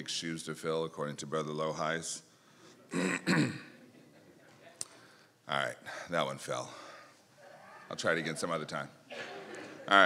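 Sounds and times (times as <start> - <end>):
man clearing his throat: 2.9 - 3.8.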